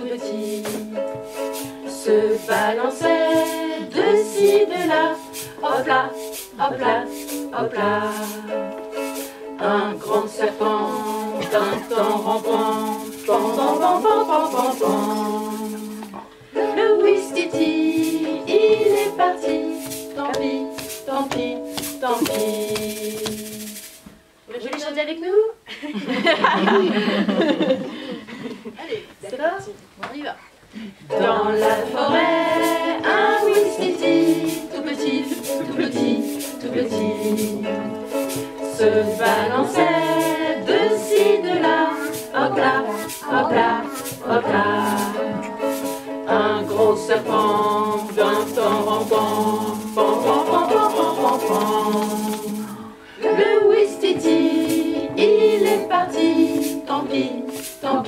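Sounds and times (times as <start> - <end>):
women singing with ukulele: 0.0 - 24.1, 31.0 - 58.0
hand rattle shakes: 0.2 - 16.3, 17.0 - 24.1, 31.4 - 58.0
woman's voice: 28.8 - 30.5.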